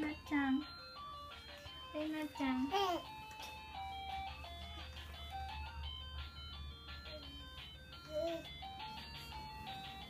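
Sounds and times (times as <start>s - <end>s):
electronic toy beeping melody: 0.0s - 10.0s.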